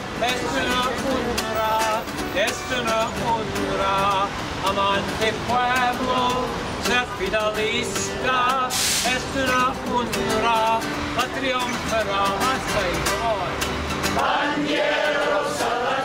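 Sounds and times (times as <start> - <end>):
acoustic guitar strummed: 0.0 - 16.0
men singing together: 0.2 - 13.2, 14.1 - 16.0.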